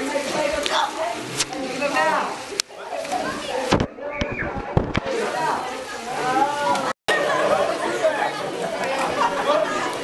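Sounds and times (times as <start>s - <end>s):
young voices chattering and shouting: 0.0s - 10.0s.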